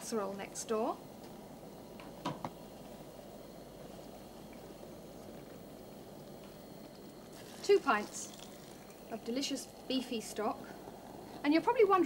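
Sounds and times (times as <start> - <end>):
liquid pouring into pot: 7.2 - 11.4.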